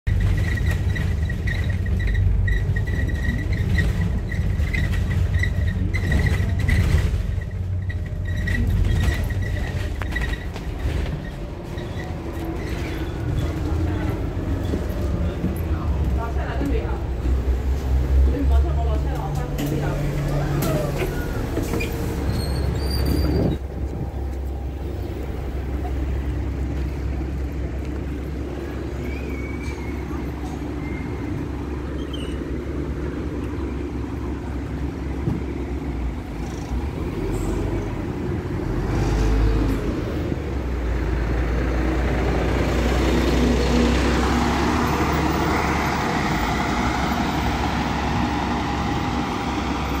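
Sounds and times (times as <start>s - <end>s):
road noise: 0.0s - 50.0s
bus diesel engine droning: 0.1s - 50.0s.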